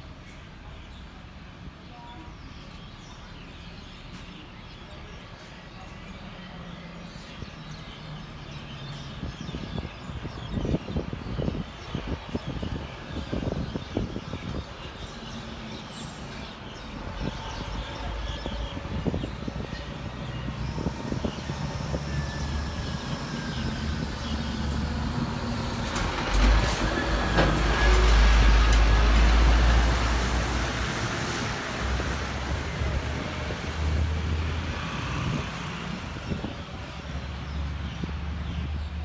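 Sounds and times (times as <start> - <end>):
truck engine rumble passing: 18.8 - 39.0.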